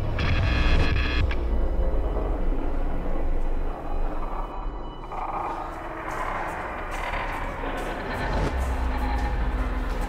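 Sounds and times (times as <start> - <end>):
low rumbling horror drone: 0.0 - 10.0.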